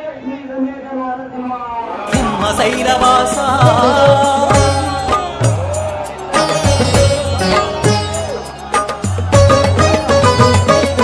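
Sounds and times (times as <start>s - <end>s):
man chanting: 2.1s - 5.7s.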